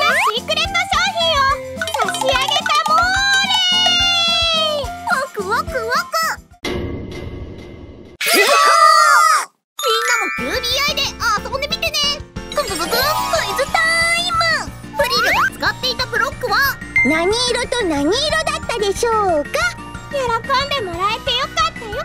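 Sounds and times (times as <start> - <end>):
bright children's music: 0.0 - 6.3, 9.8 - 22.0
chiming jingles: 1.8 - 4.2, 9.8 - 11.2, 12.6 - 14.3.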